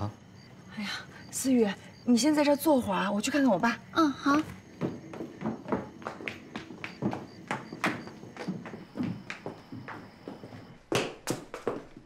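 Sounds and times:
footsteps on stone paving: 0:04.1 - 0:12.0.

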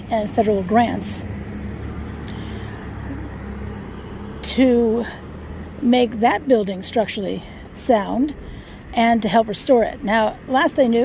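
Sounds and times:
pickup truck driving past: 0:00.4 - 0:08.9.

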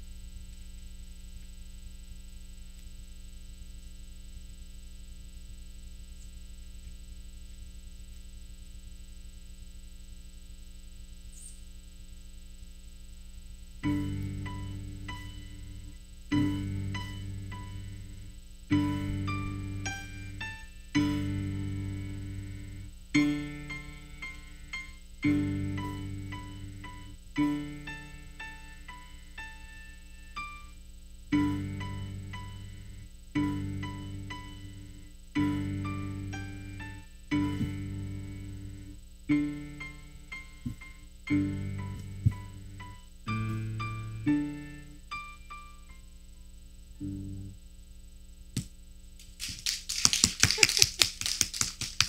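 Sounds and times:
low piano chord: 0:31.4 - 0:46.0, 0:47.0 - 0:47.6
audience applauding: 0:49.4 - 0:52.0.

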